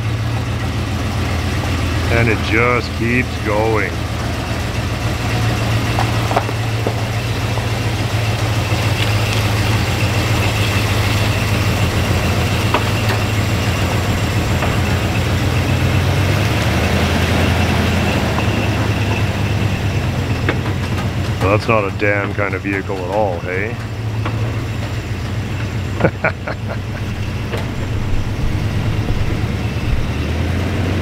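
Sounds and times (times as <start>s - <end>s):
pickup truck engine running: 0.0s - 31.0s.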